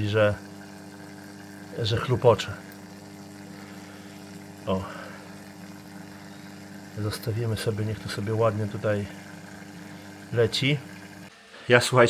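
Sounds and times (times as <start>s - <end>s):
water trickling: 0.0s - 11.3s
water pump humming: 0.0s - 12.0s.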